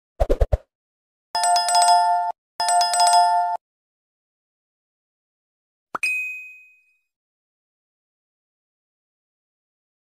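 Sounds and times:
bright bell-like ding: 0:06.0 - 0:07.1.

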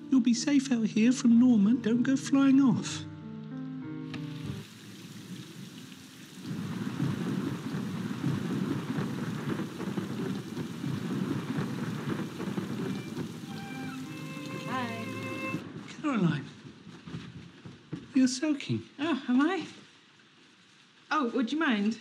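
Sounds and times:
faint music: 0:00.0 - 0:04.7, 0:12.1 - 0:17.2
heavy rain: 0:04.2 - 0:21.6.

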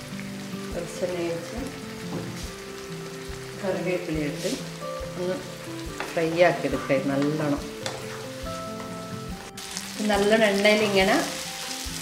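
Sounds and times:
chicken sizzling in a frying pan: 0:00.0 - 0:12.0.

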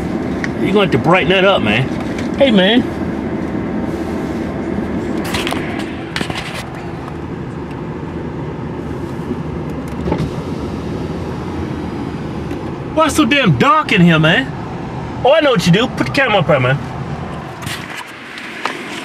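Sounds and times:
car idling hum: 0:00.0 - 0:19.0.

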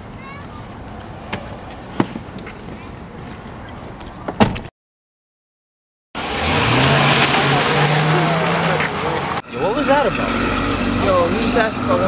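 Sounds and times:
street background: 0:00.0 - 0:04.7, 0:06.2 - 0:12.0.

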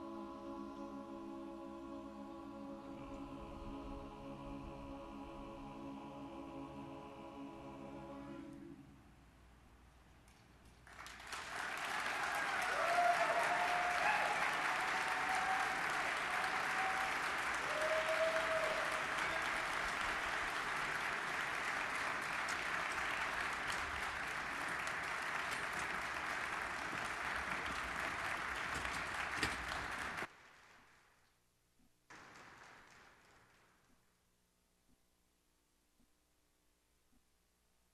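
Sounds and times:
audience applauding: 0:10.8 - 0:31.1, 0:32.1 - 0:33.8
cheering calls: 0:11.4 - 0:30.3.

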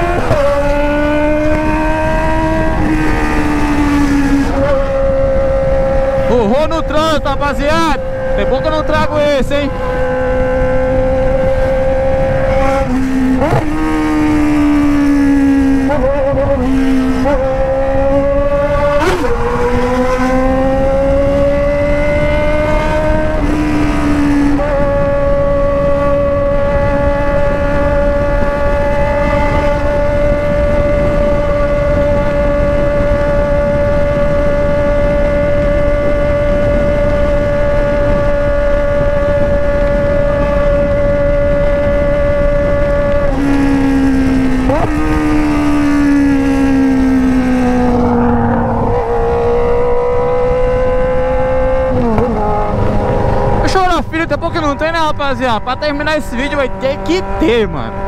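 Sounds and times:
motorcycle engine revving: 0:00.0 - 0:58.0
wind rushing: 0:00.0 - 0:58.0.

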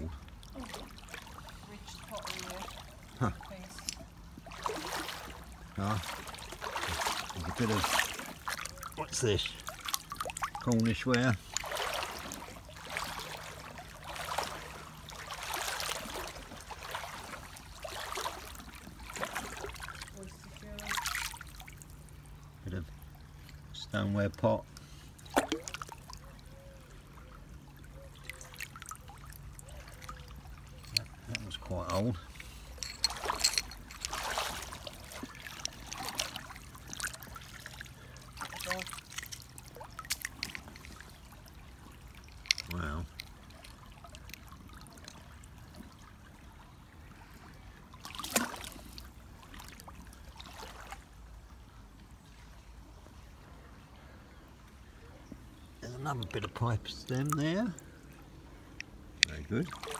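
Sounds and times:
stream trickling over gravel: 0:00.0 - 0:26.4, 0:27.5 - 0:53.3, 0:55.5 - 0:59.9
water splashing: 0:00.0 - 0:54.2, 0:55.8 - 0:59.9.

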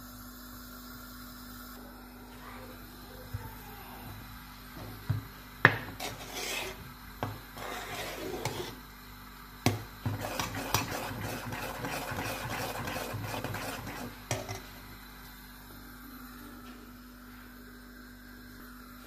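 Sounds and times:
metal spoon scraping a pot: 0:05.9 - 0:06.8, 0:07.5 - 0:08.8, 0:10.1 - 0:14.6.

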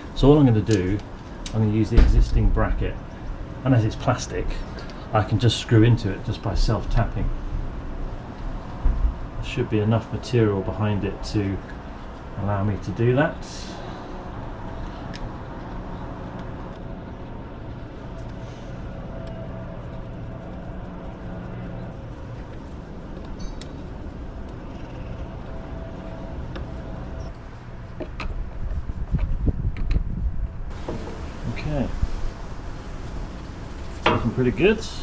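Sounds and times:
vehicle engine drone: 0:00.0 - 0:35.0
low rumbling bumps: 0:01.0 - 0:03.6, 0:06.3 - 0:10.0.

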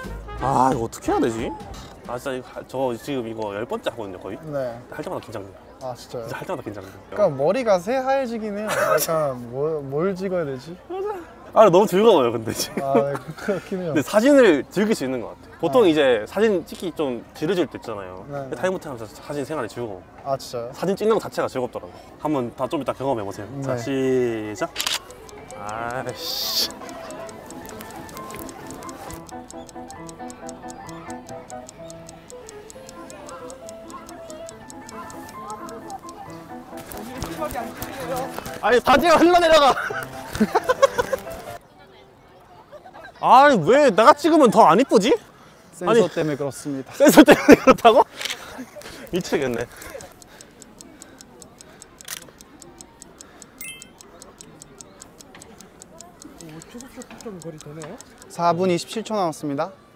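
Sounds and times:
music with clock-like ticking: 0:24.6 - 0:41.6, 0:49.0 - 0:58.8.

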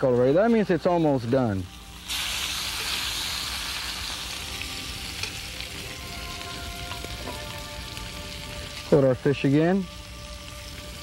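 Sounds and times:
fish sizzling on a grill: 0:00.0 - 0:11.0.

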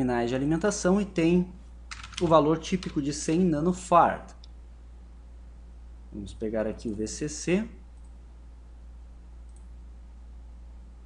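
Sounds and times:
steady low hum: 0:00.0 - 0:11.0
faint computer mouse click: 0:09.4 - 0:09.7.

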